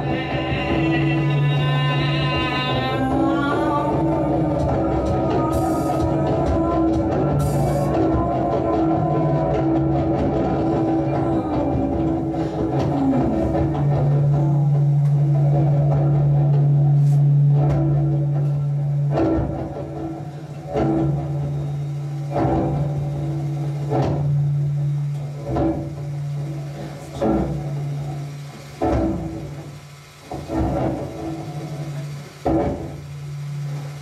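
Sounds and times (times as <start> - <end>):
amplified cello drone: 0.0 - 34.0.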